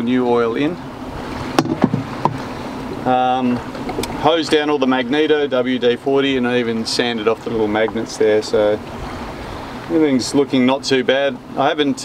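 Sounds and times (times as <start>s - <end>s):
sea noise: 0.0s - 12.0s
wind: 0.0s - 12.0s
light knocks: 1.6s - 2.5s.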